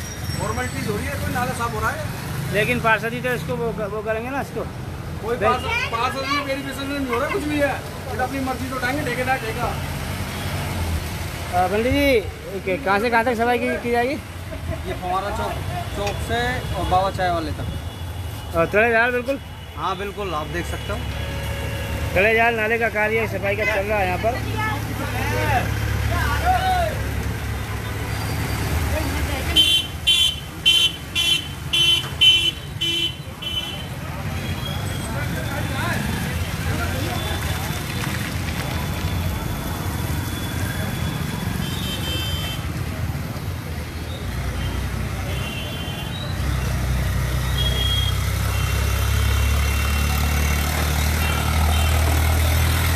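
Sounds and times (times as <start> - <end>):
street traffic: 0.0 - 52.9
vehicle horn electronic beeps: 47.5 - 48.2.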